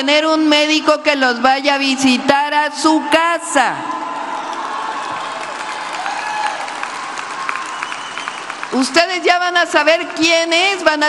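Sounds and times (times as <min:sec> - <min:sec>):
audience applauding: 0:04.0 - 0:09.2.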